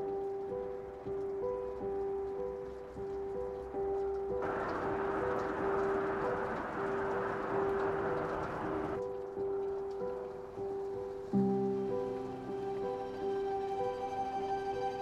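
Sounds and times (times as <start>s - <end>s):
soft slow background music: 0.0s - 15.0s
steady rushing hiss: 0.0s - 15.0s.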